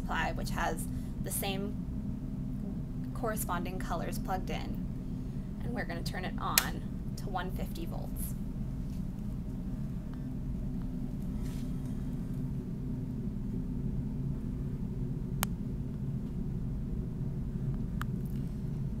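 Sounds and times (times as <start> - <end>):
low hum and rumble: 0.0 - 19.0.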